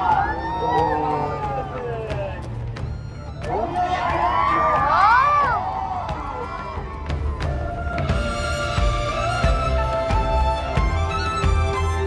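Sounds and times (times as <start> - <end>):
crowd cheering and whooping: 0.0 - 2.4, 3.4 - 8.4.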